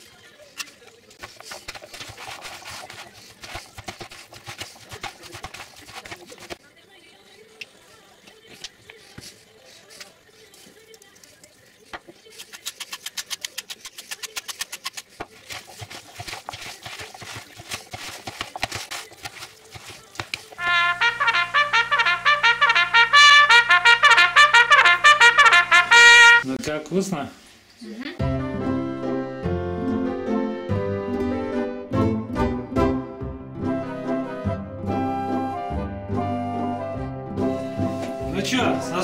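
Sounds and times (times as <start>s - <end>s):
spoon stirring salad in plastic bowl: 0.5s - 6.7s, 7.6s - 20.8s
loud trumpet music: 20.6s - 26.5s.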